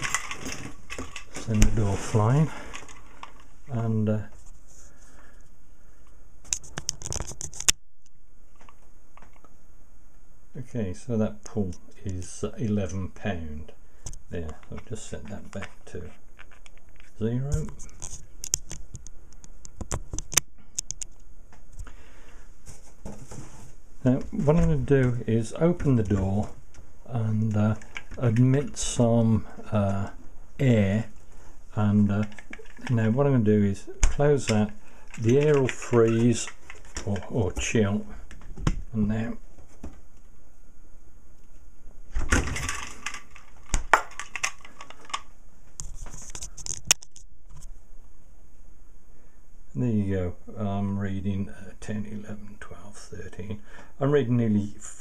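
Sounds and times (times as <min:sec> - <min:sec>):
hook and scale rattling: 0:00.0 - 0:01.6
soft brushing rustle: 0:00.8 - 0:05.2, 0:22.6 - 0:26.4
small clicks and scratches: 0:06.5 - 0:07.8, 0:15.5 - 0:21.3, 0:42.8 - 0:47.7.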